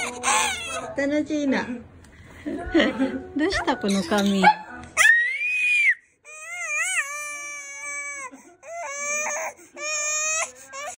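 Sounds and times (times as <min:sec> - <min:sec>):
baby crying: 0:00.0 - 0:01.0, 0:05.0 - 0:11.0.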